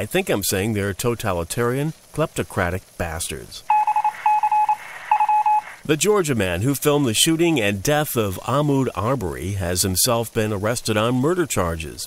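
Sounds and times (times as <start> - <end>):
rapid electronic beeps: 3.7 - 5.8.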